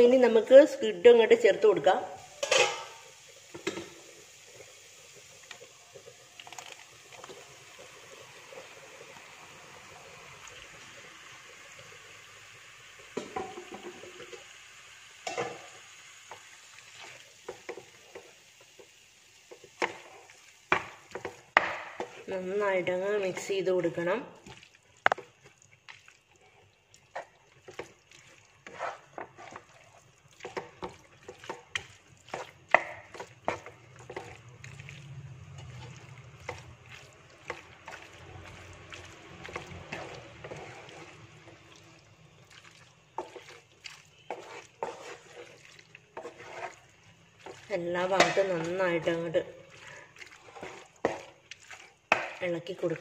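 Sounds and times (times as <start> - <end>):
spatula scraping and knocking a pan: 2.4 - 4.0, 13.1 - 14.4, 19.5 - 22.3, 28.6 - 34.4, 35.5 - 41.6, 43.1 - 49.3, 50.3 - 52.5.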